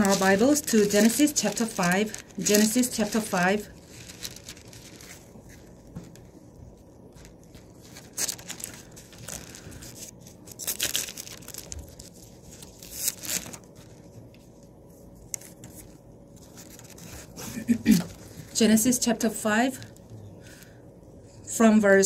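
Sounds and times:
thin pages rustling: 0:00.0 - 0:18.6.

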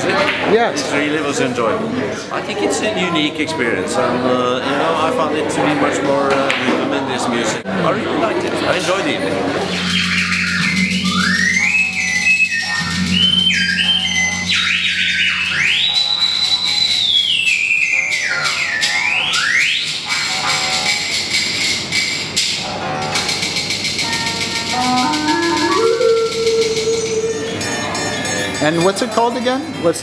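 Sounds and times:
bamboo flute melody: 0:09.6 - 0:21.2, 0:24.2 - 0:28.4.

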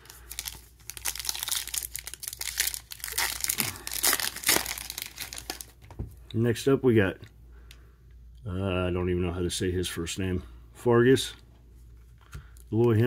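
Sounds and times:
foil wrapper tearing and crinkling: 0:00.0 - 0:05.8.

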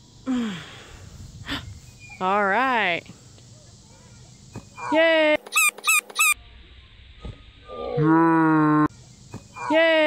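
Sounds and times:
high-pitched squeaky vocal calls: 0:04.8 - 0:06.4.

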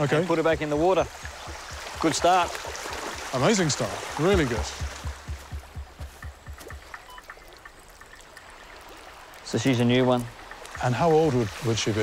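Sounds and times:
river rushing: 0:00.0 - 0:12.0
low thuds: 0:00.4 - 0:03.3, 0:03.9 - 0:07.1.

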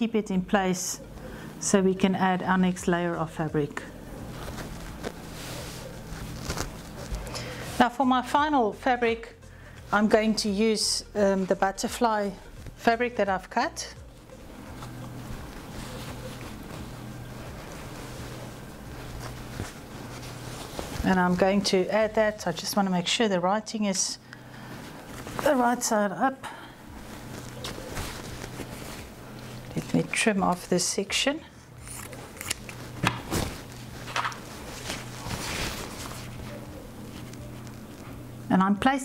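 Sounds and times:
cotton fabric rustling: 0:00.0 - 0:39.0
steady low hum: 0:00.0 - 0:39.0.

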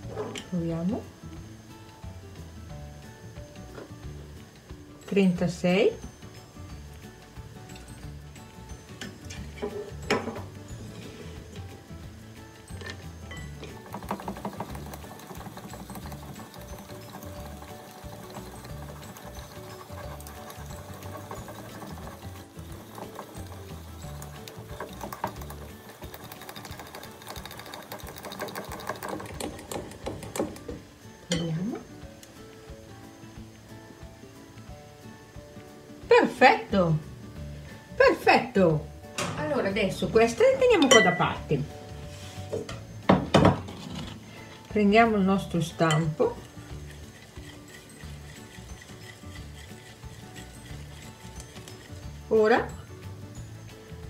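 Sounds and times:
quiet background music: 0:00.0 - 0:54.0
whisk ticking against bowl: 0:13.3 - 0:30.7, 0:45.6 - 0:52.8.

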